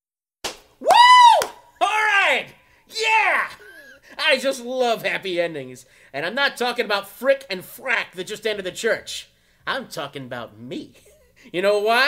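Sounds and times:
person making swooping cries: 0:00.8 - 0:04.1.

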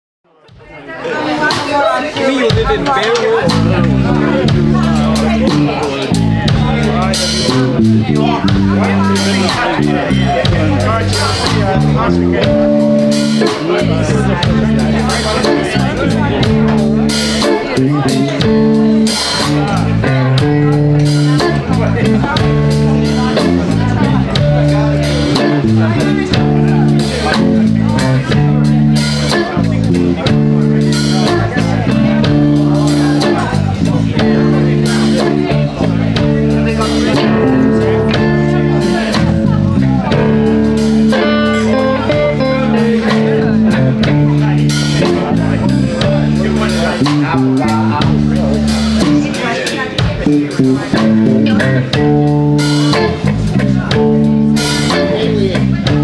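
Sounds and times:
blues band playing: 0:00.5 - 0:56.0
electric guitar: 0:02.5 - 0:56.0.

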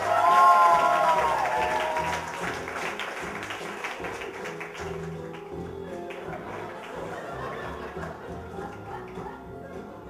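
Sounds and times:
audience applause: 0:00.0 - 0:09.4
background music: 0:00.0 - 0:10.0.

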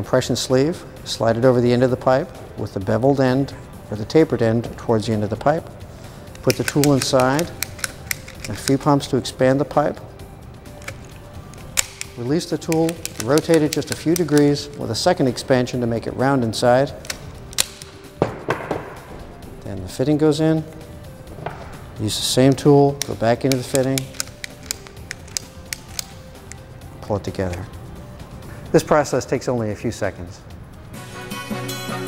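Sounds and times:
faint background music: 0:00.0 - 0:32.0
expander tool clicks: 0:06.3 - 0:09.0, 0:10.8 - 0:14.9, 0:17.0 - 0:18.0, 0:22.5 - 0:26.7.

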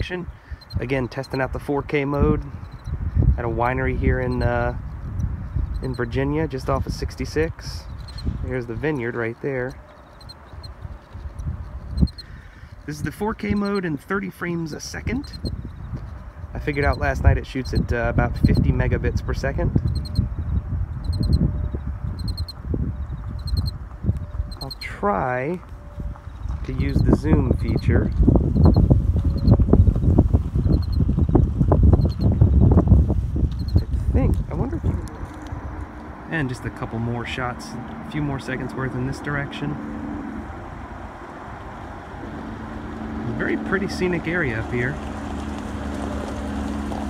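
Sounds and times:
wind buffeting microphone: 0:00.0 - 0:47.0.

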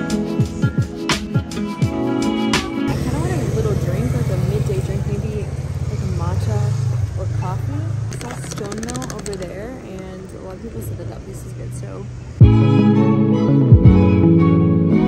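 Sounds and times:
background music: 0:00.0 - 0:05.5, 0:12.4 - 0:15.0
street traffic rumble: 0:00.0 - 0:12.6
woman speaking: 0:02.9 - 0:12.1.

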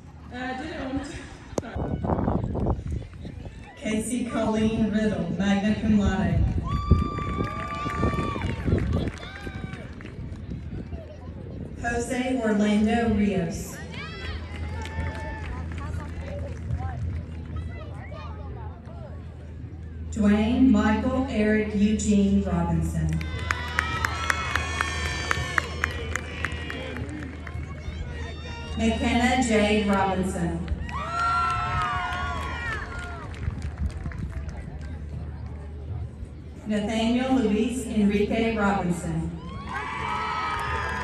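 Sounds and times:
faint crowd voices: 0:00.0 - 0:41.0
steady low hum: 0:00.0 - 0:41.0
steady low rumble: 0:00.0 - 0:41.0.

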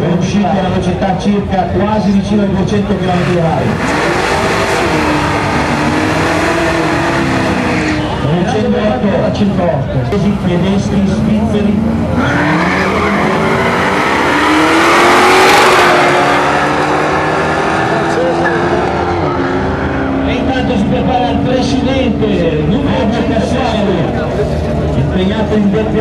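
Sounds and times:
drag racing cars accelerating: 0:00.0 - 0:26.0.

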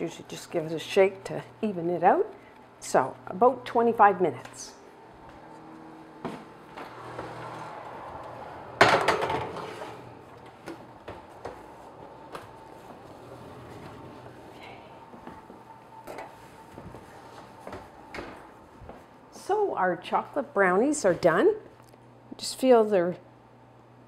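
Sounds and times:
oven door bang: 0:08.8 - 0:09.8.

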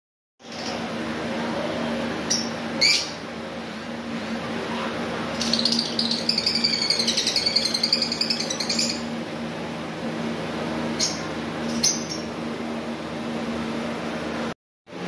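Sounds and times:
steady low hum: 0:00.4 - 0:15.0.

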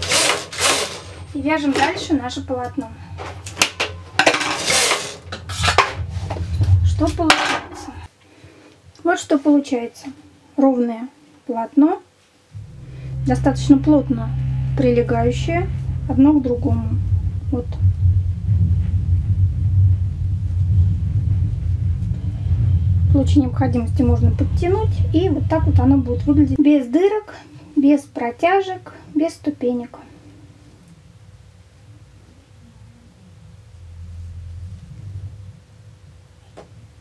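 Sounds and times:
low rumble: 0:01.0 - 0:08.1, 0:12.5 - 0:37.0.

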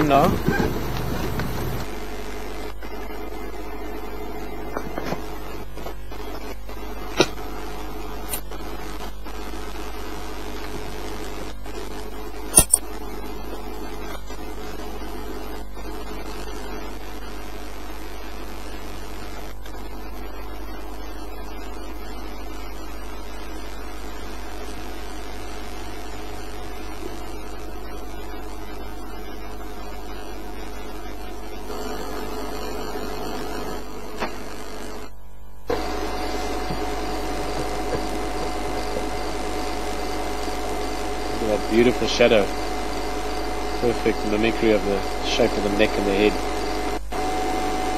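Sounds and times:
steady low hum: 0:00.0 - 0:47.9
brief clicks: 0:12.6 - 0:12.8.

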